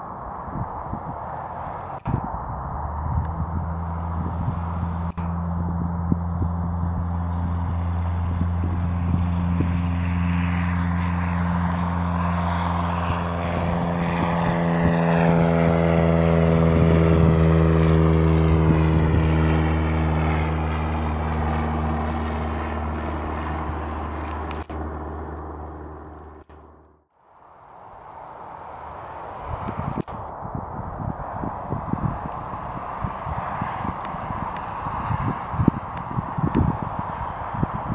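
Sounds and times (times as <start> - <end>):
propeller plane engine drone: 0.0 - 37.9.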